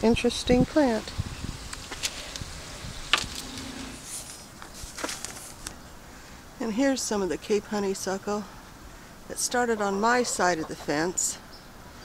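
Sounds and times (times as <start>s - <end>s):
outdoor hiss: 0.0s - 6.7s
rustling foliage: 0.0s - 10.5s.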